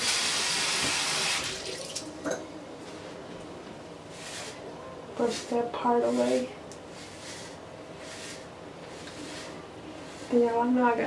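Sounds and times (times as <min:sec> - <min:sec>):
tap running water: 0:00.0 - 0:02.1.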